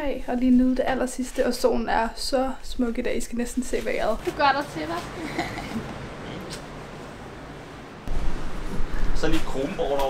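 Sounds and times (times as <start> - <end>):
seaside background noise: 0.0 - 10.0.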